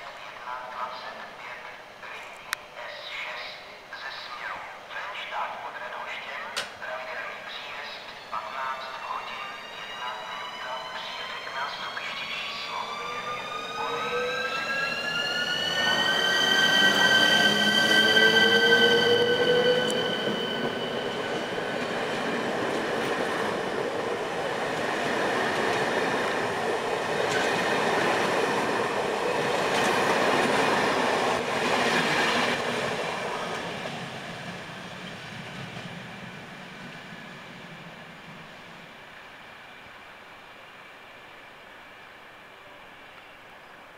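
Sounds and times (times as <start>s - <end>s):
electric locomotive drive whining: 8.0s - 38.7s
train wheels rumbling on rails: 9.6s - 38.7s.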